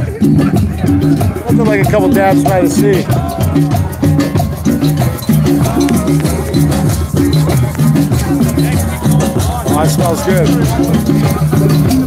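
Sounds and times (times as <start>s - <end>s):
hand drums playing rhythm: 0.0s - 12.0s
shakers rattling: 1.0s - 12.0s.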